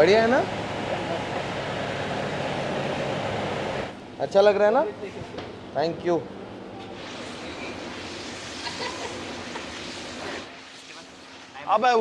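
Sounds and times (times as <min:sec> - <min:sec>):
steady rushing machinery noise: 0:00.0 - 0:04.1, 0:06.8 - 0:12.0.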